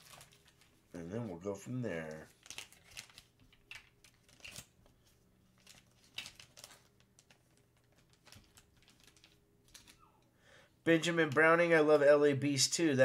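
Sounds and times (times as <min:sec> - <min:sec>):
plastic bags rustling: 0:00.0 - 0:00.9, 0:01.9 - 0:10.0
faint steady hum: 0:00.0 - 0:13.0.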